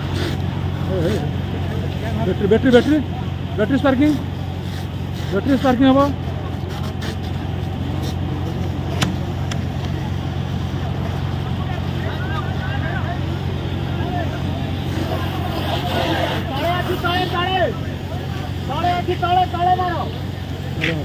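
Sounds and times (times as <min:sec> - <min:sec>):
vehicle engine droning: 0:00.0 - 0:21.0.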